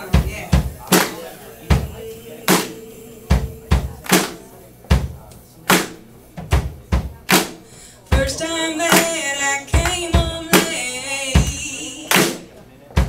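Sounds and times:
snare drum hits: 0.2 - 7.6, 9.8 - 10.8, 11.4 - 12.5
bass drum hits: 3.3 - 5.3.

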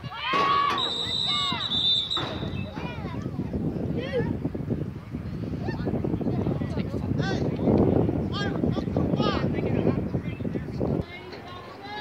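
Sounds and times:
referee whistle: 0.7 - 2.8.

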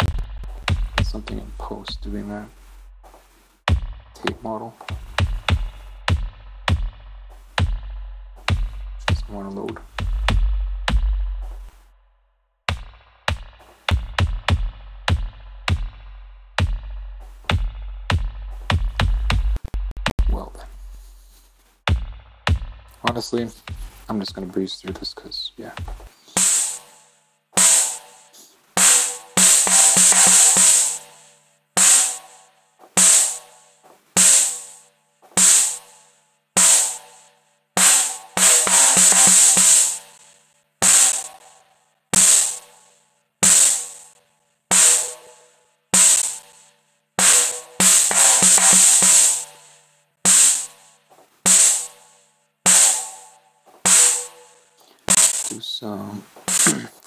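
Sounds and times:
sharp drum hits: 0.0 - 11.8, 21.9 - 31.2, 31.8 - 33.6, 34.2 - 36.0, 36.6 - 41.6, 42.2 - 45.4, 46.0 - 55.7, 56.4 - 57.0
bright cymbal wash: 26.3 - 32.4, 43.4 - 50.9, 52.7 - 55.6.

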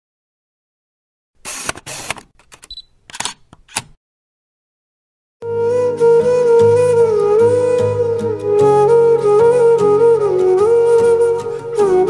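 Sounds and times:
short mechanical whirrs: 1.4 - 2.2
camera shutter clicks: 1.4 - 3.9.

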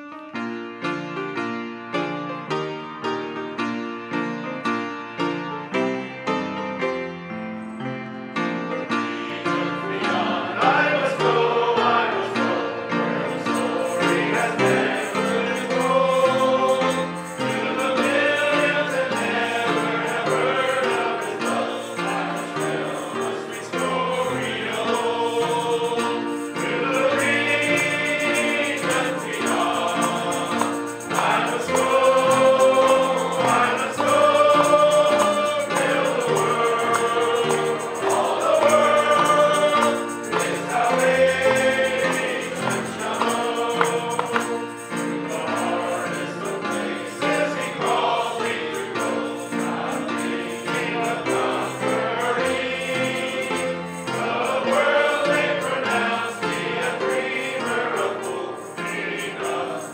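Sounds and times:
congregation singing a hymn: 3.4 - 59.9.

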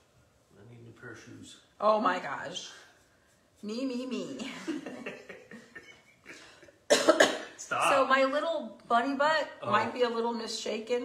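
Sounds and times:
woman coughing: 6.9 - 7.6.

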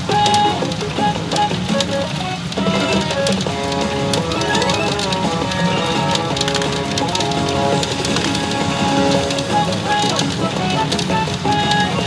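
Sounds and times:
pachinko machine music: 0.0 - 12.0
steel balls clattering: 2.4 - 12.0.

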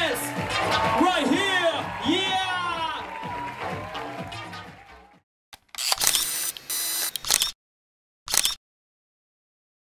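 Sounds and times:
dance music: 0.0 - 5.2.

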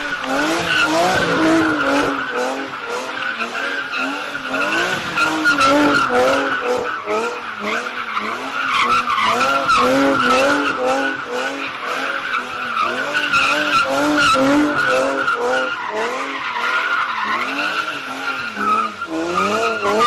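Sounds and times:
car engine revving: 0.0 - 20.0.

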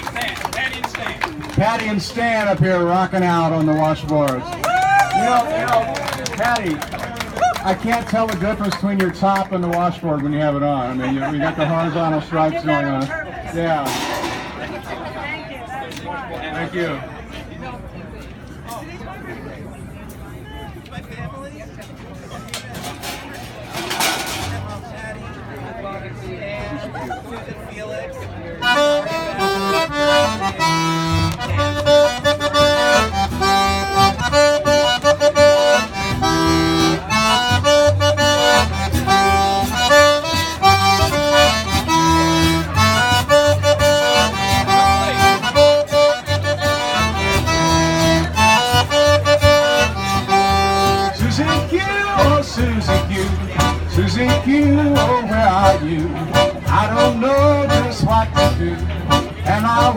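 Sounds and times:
guitar: 6.9 - 16.2, 21.8 - 27.2, 28.2 - 59.9
button accordion melody: 28.6 - 59.9
low bass line: 29.2 - 59.9.

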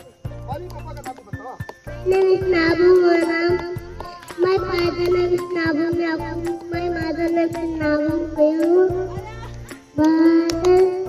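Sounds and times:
music with a steady beat: 0.0 - 11.0
child singing into a microphone: 4.4 - 9.4, 10.0 - 11.0.

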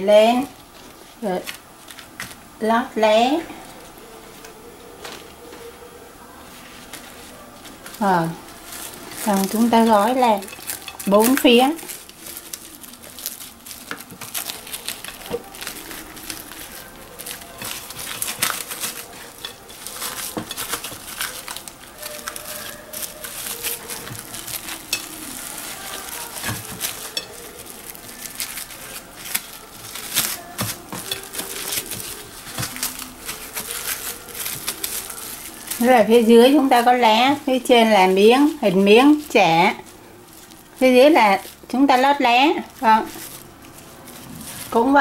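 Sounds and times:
plastic cling wrap crinkling: 0.1 - 45.0.

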